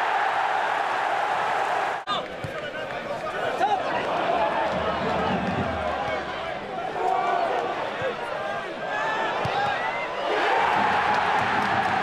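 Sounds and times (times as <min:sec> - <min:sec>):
football crowd noise: 0:00.0 - 0:12.0.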